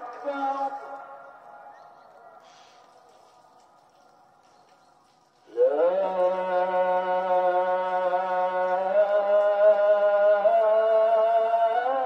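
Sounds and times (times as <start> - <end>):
call to prayer over loudspeakers: 0.0 - 12.0.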